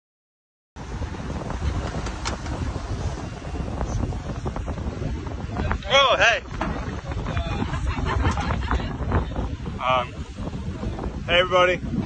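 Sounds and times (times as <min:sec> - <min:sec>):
boat engine rumble: 0:00.8 - 0:12.0
wind buffeting microphone: 0:00.8 - 0:12.0.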